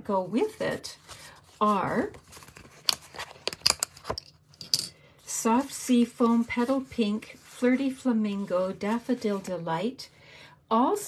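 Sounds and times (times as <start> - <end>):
paper rustling: 0.5 - 4.2, 5.6 - 9.8.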